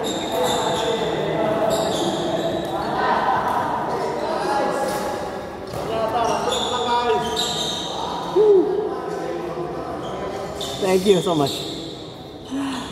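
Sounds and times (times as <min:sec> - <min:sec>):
shoes squeaking on court floor: 0:00.0 - 0:02.8, 0:05.7 - 0:08.1, 0:09.9 - 0:12.2
people's voices and calls: 0:00.0 - 0:12.9.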